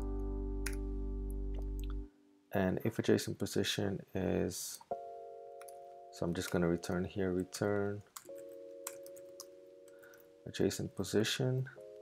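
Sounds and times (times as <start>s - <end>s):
computer keyboard clicks: 7.7s - 10.3s.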